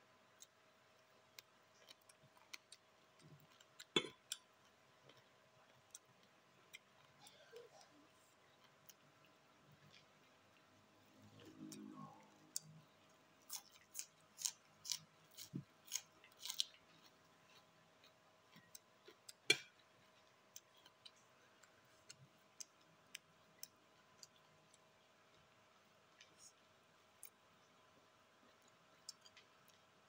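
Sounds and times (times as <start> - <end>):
person chewing crunchy food: 1.2 - 24.9.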